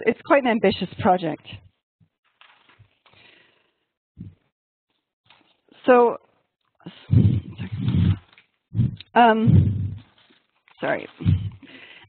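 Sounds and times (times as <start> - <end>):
person clearing throat: 7.0 - 10.1, 11.2 - 11.6.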